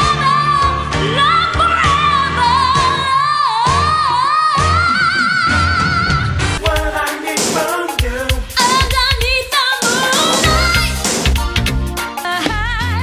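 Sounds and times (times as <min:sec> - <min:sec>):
pop band with bass and drums: 0:00.0 - 0:13.0.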